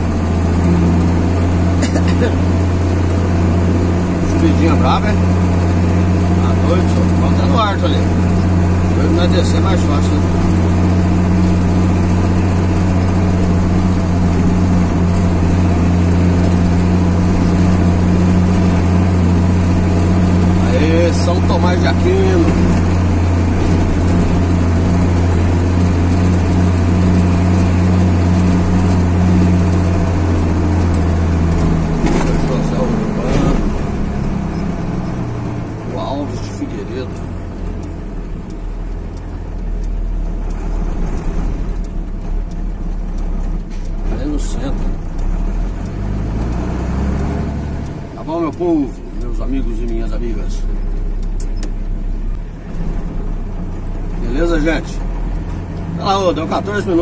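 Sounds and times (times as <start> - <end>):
vehicle engine humming: 0.0 - 57.0.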